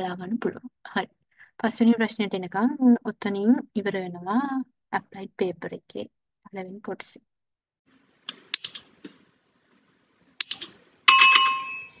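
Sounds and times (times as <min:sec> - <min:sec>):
mouse clicks: 0:08.3 - 0:09.2, 0:10.4 - 0:10.8
notification bell chime: 0:11.1 - 0:12.0.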